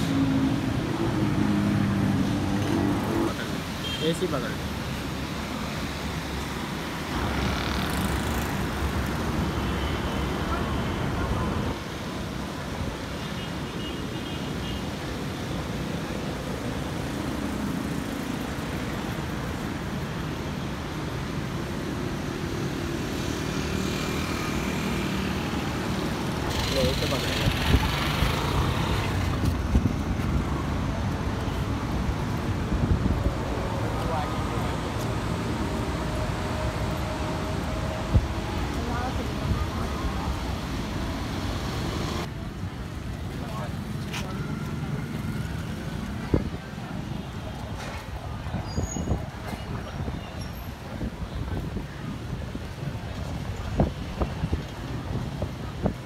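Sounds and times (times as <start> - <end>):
road traffic rumble: 0.0 - 56.0.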